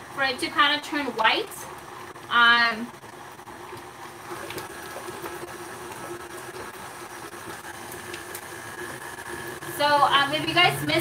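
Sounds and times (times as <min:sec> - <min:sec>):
stand mixer motor humming: 0:00.0 - 0:11.0.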